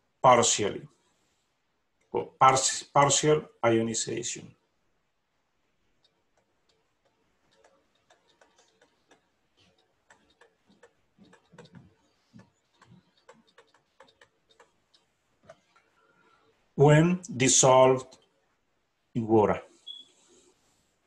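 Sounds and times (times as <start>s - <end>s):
stylus tapping on tablet: 6.0s - 15.6s.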